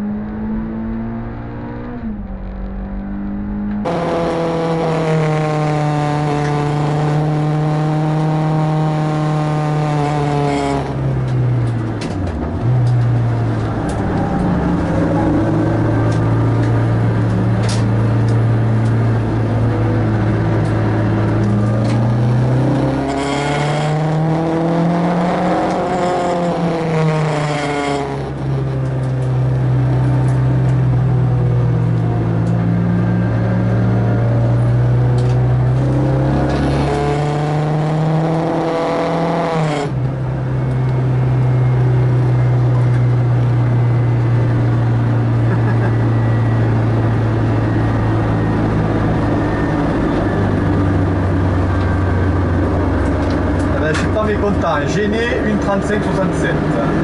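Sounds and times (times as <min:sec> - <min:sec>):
high whine climbing and falling: 0:00.0 - 0:08.7, 0:10.8 - 0:39.1
car engine droning: 0:00.0 - 0:57.0.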